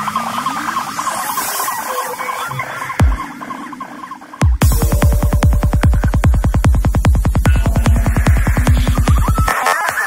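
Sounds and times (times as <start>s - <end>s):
chirping electronic sounds: 0.0s - 10.0s
kick drum: 4.4s - 9.4s.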